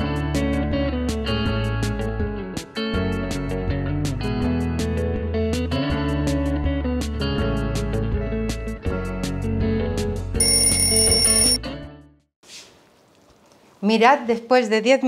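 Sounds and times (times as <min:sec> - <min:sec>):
alarm clock bell ringing: 0:10.4 - 0:11.6.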